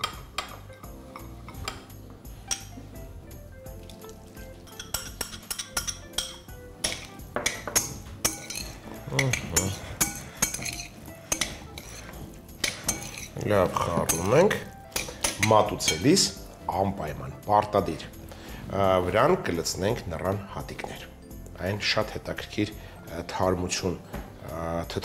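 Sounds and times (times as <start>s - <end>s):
utensil clinking against glass bowl: 4.6s - 16.3s.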